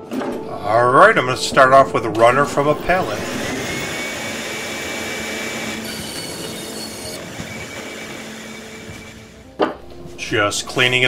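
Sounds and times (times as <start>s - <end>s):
thin high whine: 0.4s - 8.0s
bandsaw cutting wood: 2.9s - 9.5s.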